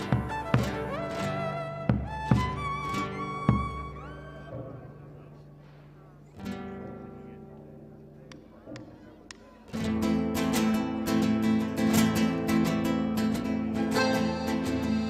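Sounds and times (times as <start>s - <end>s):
folk ensemble playing: 0.0s - 5.9s, 9.8s - 15.0s
plucked guitar notes: 0.0s - 9.1s, 9.7s - 15.0s.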